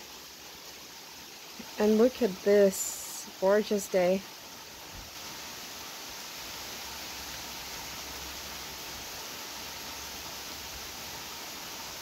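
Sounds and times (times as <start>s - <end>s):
heavy rain falling: 0.0s - 12.0s.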